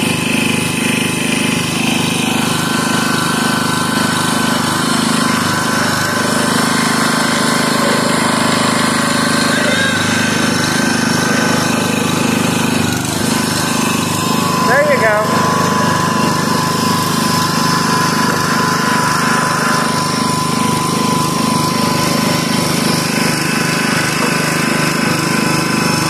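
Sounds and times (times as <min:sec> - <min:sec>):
tractor engine running: 0:00.0 - 0:26.0.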